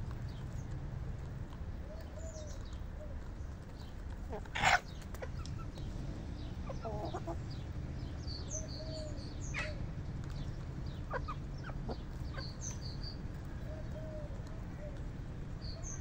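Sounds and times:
hens clucking: 4.0 - 5.8, 6.6 - 7.6, 10.9 - 15.0.

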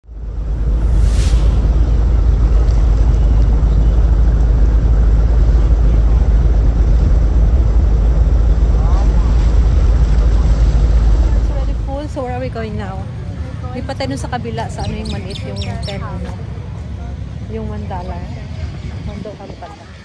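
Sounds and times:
wind buffeting microphone: 0.1 - 20.0
boat engine running: 1.6 - 13.5.

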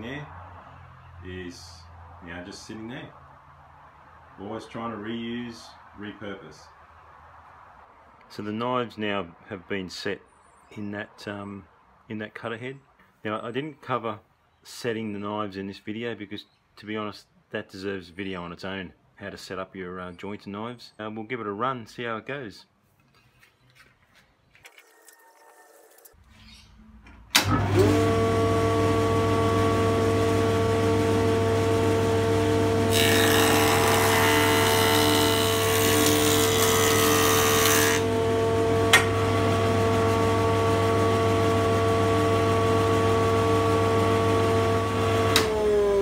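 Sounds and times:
jointer motor whining: 27.4 - 46.0.

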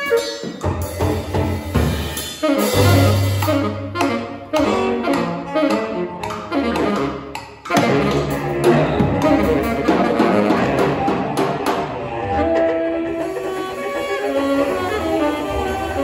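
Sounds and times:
tenor saxophone: 0.0 - 1.0, 1.9 - 16.0
drum kit: 0.0 - 16.0
bowed cello: 2.6 - 16.0.

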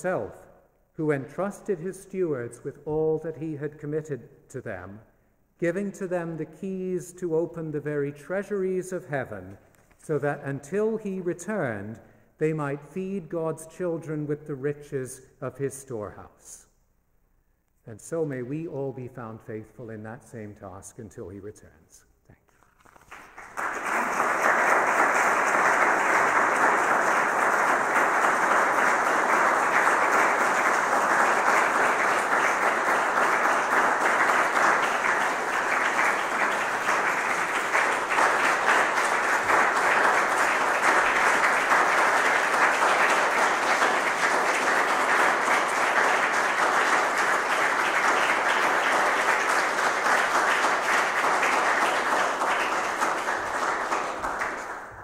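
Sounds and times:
audience applauding: 22.8 - 55.0.

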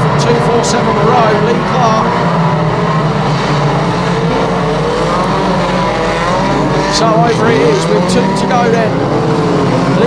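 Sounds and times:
engine note rising in pitch: 0.0 - 10.0
racing car engines droning: 0.0 - 10.0.

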